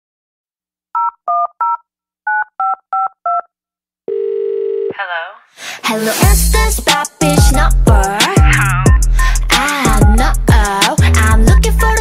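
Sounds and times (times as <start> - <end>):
touch-tone keypad beeps: 1.0 - 3.5
steady low telephone tone: 4.1 - 5.0.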